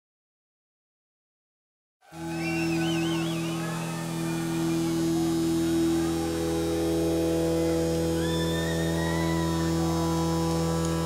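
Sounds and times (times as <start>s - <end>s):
faint high whistle gliding upward: 2.1s - 7.0s, 7.6s - 10.1s
drone of sustained notes: 2.1s - 11.0s.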